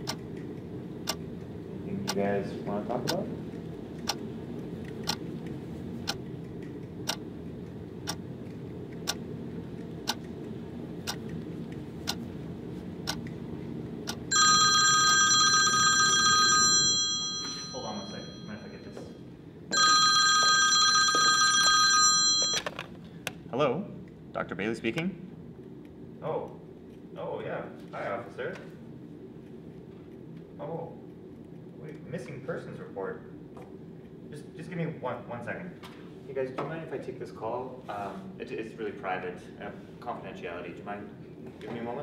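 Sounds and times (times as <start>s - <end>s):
low steady hum: 0.0s - 42.0s
wall clock ticking: 7.0s - 7.2s
telephone ringing: 14.3s - 19.0s, 19.7s - 22.9s.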